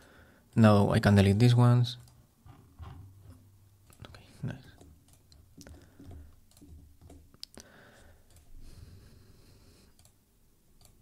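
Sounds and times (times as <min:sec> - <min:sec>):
faint room noise: 0:00.0 - 0:11.0
computer mouse clicks: 0:03.8 - 0:07.7, 0:09.9 - 0:10.2, 0:10.8 - 0:11.0.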